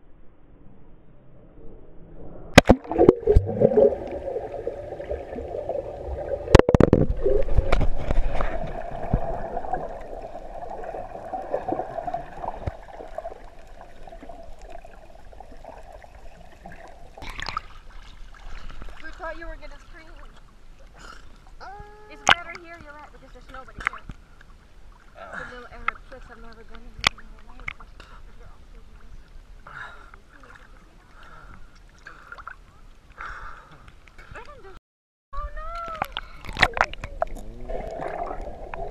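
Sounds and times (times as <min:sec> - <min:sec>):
underwater gurgling and sloshing: 0:00.0 - 0:21.6, 0:22.2 - 0:34.8, 0:35.4 - 0:38.9
knocks and splashes: 0:02.5 - 0:14.8, 0:16.6 - 0:19.6, 0:35.6 - 0:38.9.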